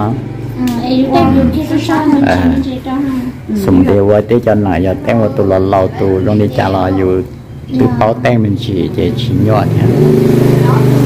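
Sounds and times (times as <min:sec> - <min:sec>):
people talking: 0:00.0 - 0:11.0
vehicle engine running: 0:07.1 - 0:11.0.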